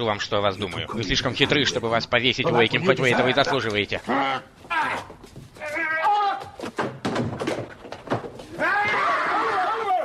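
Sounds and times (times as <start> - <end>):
men crying out and grunting: 0.9 - 5.1.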